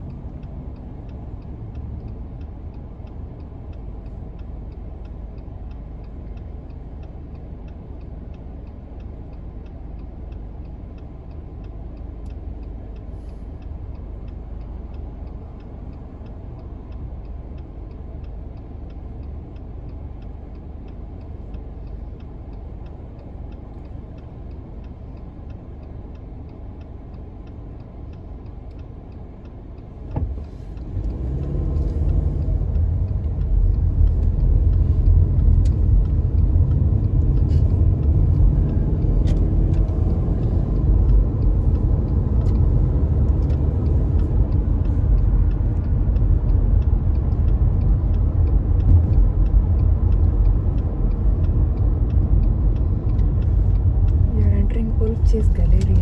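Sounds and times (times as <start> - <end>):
engine and tyre rumble: 0.0 - 56.0.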